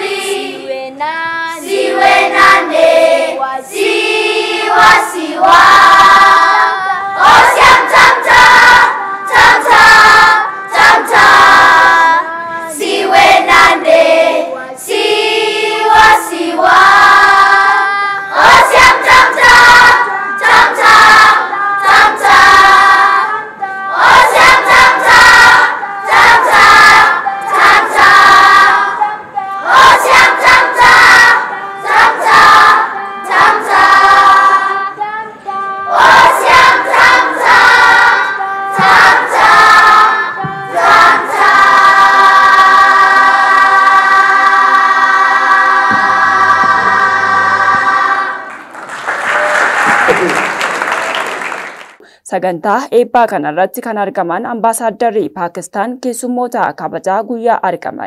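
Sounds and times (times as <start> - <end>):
children's choir singing: 0.0 - 51.8.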